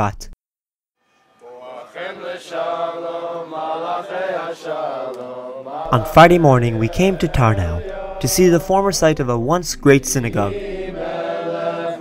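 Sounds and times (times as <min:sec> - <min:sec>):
person narrating: 0:00.0 - 0:00.4, 0:05.9 - 0:10.7
person singing chant-like melody: 0:01.4 - 0:12.0.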